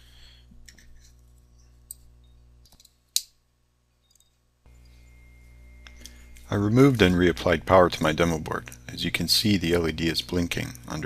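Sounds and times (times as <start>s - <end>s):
faint electrical hum: 0.0s - 11.0s.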